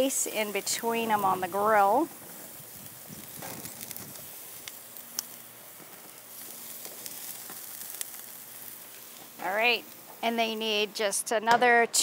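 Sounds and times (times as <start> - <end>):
grease crackles and pops: 0.0 - 11.2
skewers sizzling on a grill: 0.0 - 12.0.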